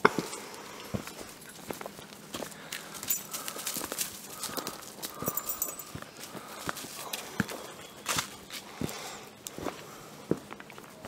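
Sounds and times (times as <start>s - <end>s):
footsteps on rocky dirt trail: 0.0s - 11.0s.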